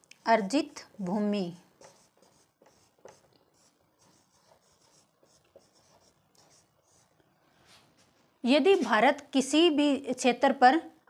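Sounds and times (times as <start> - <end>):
marker squeaking on whiteboard: 1.8 - 7.2.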